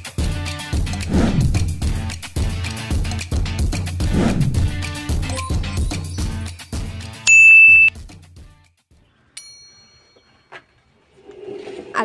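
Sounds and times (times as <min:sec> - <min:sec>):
intro music with a beat: 0:00.0 - 0:04.0
notification bell ding: 0:07.3 - 0:07.9.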